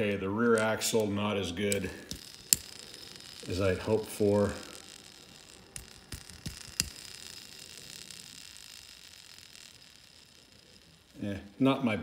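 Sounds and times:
toy car clicking: 0:00.0 - 0:11.9
faint room hiss: 0:00.0 - 0:12.0.

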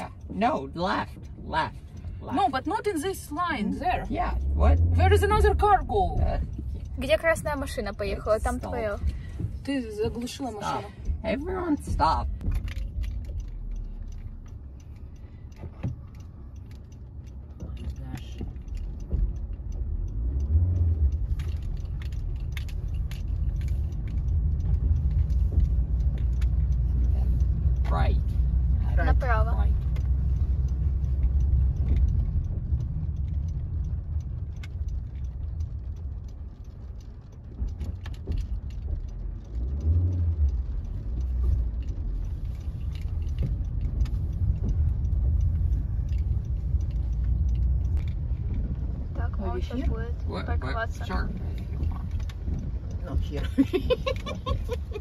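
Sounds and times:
car engine rumble: 0:00.0 - 0:55.0
road noise: 0:00.0 - 0:55.0.

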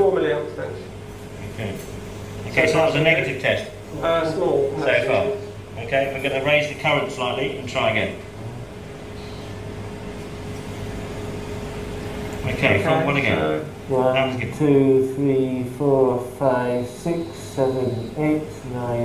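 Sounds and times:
low electrical hum: 0:00.0 - 0:19.0
constant single tone: 0:09.0 - 0:10.3, 0:15.3 - 0:19.0
man counting aloud: 0:12.4 - 0:19.0.

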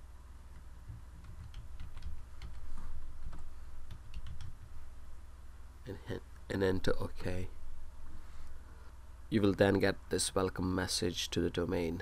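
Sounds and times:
steady low hum: 0:00.0 - 0:12.0
keyboard keys clicking: 0:00.5 - 0:04.7.

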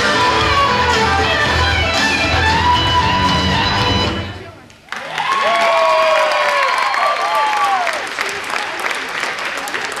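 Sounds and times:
audience clapping: 0:03.6 - 0:10.0
whooping shouts: 0:05.0 - 0:08.0.

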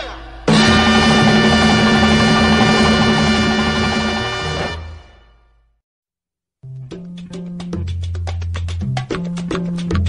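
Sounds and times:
salsa band with brass and bass: 0:00.5 - 0:05.1.

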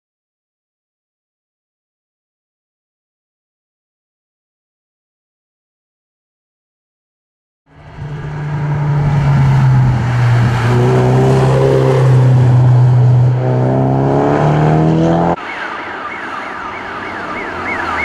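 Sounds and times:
car engine revving hard: 0:07.9 - 0:15.4
siren wailing: 0:08.1 - 0:18.0.

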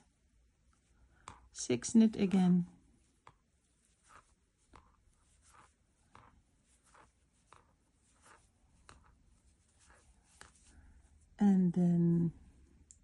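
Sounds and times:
crochet hook scratching yarn: 0:00.7 - 0:11.4.

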